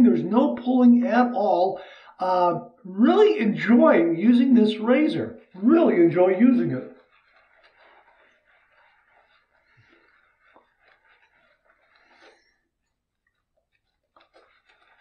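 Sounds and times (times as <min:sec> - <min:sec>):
razor scratching over stubble: 0:03.2 - 0:15.0
small ticks: 0:06.9 - 0:15.0.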